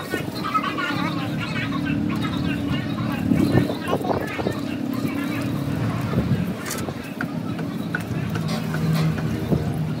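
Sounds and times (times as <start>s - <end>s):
indistinct voices talking: 0.0s - 10.0s
low engine rumble: 0.0s - 10.0s.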